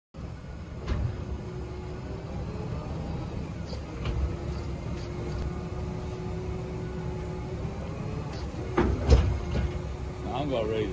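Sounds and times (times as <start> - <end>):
engine rumble: 0.2 - 10.9
hydraulic whine: 0.2 - 10.9
loud metal clunks: 8.7 - 9.9.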